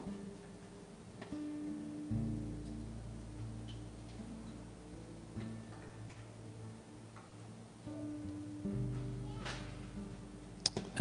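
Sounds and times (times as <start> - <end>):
sparse plucked notes: 0.0 - 11.0.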